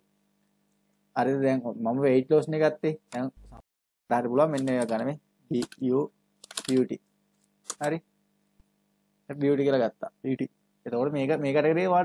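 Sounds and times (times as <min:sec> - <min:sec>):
man speaking: 0:01.2 - 0:07.0, 0:07.8 - 0:08.0, 0:09.3 - 0:12.0
typing on a computer keyboard: 0:04.5 - 0:05.0, 0:05.6 - 0:05.8, 0:06.4 - 0:06.9, 0:07.7 - 0:08.0.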